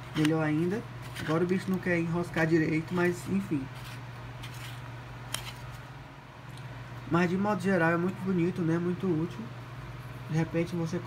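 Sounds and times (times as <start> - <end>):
steady low hum: 0.0 - 11.0
plastic rubbing and clicking: 1.0 - 1.9.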